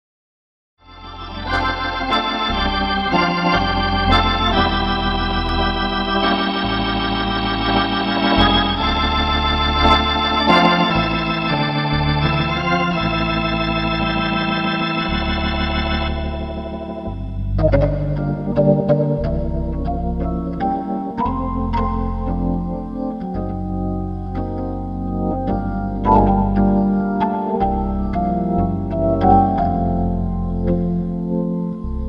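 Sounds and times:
organ playing sustained chords: 0.8s - 32.0s.

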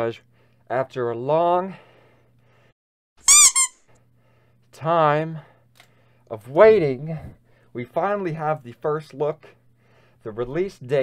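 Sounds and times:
high-pitched squeak: 3.3s - 3.8s.

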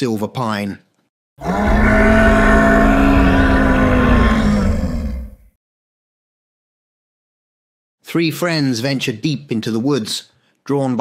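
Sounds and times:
monster growl: 1.4s - 5.5s.

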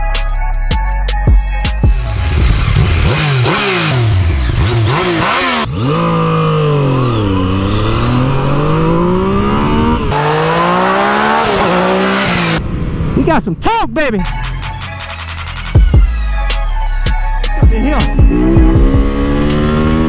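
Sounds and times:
motorcycle engine revving: 1.9s - 13.1s, 18.1s - 20.0s.

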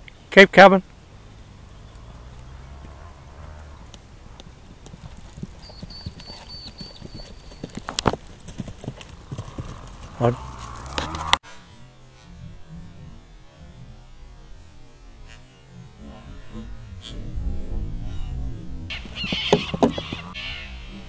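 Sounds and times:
pony hooves cantering on grass: 2.0s - 11.4s, 18.9s - 20.4s.

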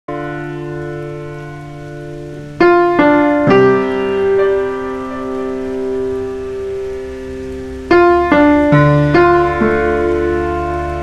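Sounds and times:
piano chords: 0.1s - 11.0s.

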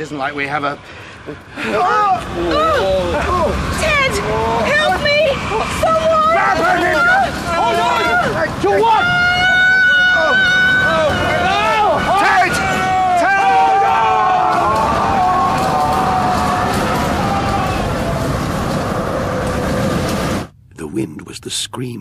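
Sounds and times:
loud rushing wind: 0.4s - 20.6s
people screaming and wailing: 1.4s - 20.0s.

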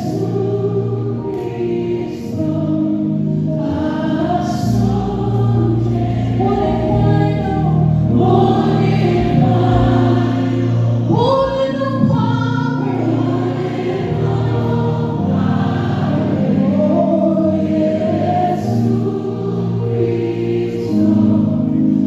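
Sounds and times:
backing singers: 0.0s - 22.0s
woman singing lead: 3.7s - 18.9s.

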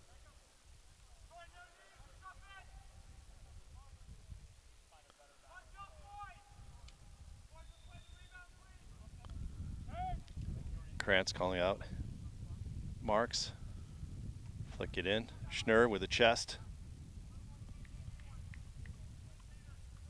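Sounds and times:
steady low rumble: 8.9s - 20.0s.

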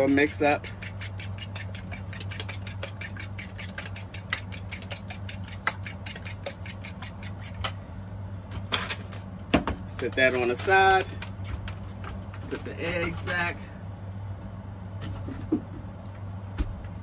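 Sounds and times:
fork beating eggs in a bowl: 0.0s - 7.7s.

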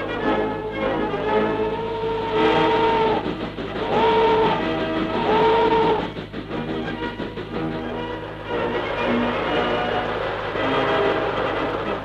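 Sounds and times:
train whistle blasts: 0.1s - 6.2s.

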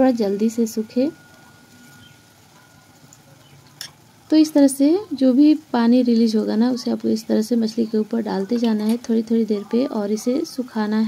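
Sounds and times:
fish simmering in sauce: 0.1s - 9.6s.

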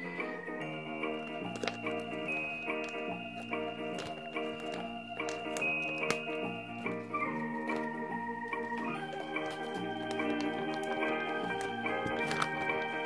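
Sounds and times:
organ-like keyboard chords: 0.0s - 13.0s.

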